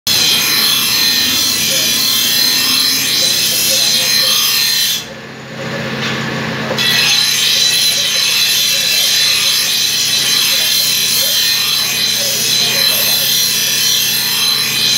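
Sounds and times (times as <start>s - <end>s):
grinding wheel sharpening knife: 0.1s - 5.2s, 6.7s - 14.9s.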